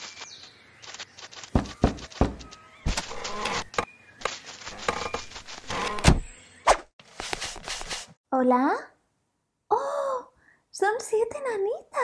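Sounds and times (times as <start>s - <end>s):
dull thumps: 1.5s - 3.8s
sharp knocks: 1.5s - 3.8s.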